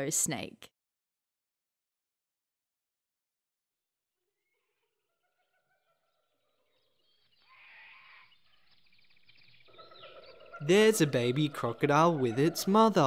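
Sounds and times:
faint animal calls: 0:07.4 - 0:08.7, 0:09.7 - 0:13.0.

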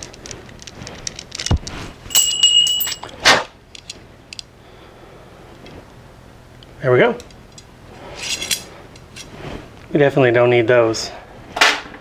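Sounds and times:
metal line rattling and clinking: 0:00.0 - 0:03.2.

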